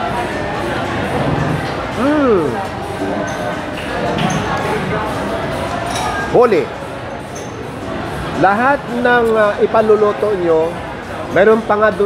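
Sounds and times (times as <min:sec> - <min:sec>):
chatter of many voices: 0:00.0 - 0:12.0.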